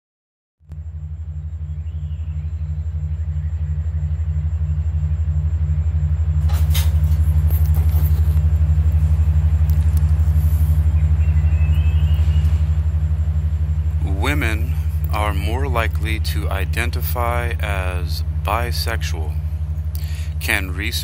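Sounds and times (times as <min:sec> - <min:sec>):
pulsing low electronic drone: 0:00.6 - 0:21.0.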